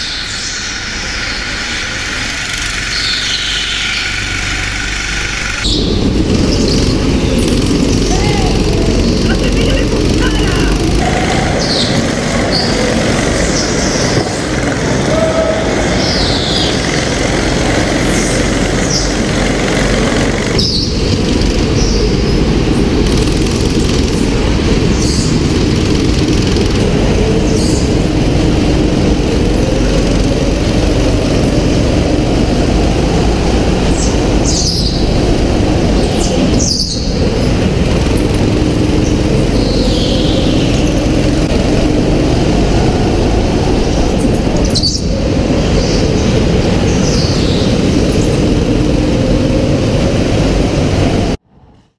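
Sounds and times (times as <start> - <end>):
go-kart engine running hard: 0.0 - 51.8.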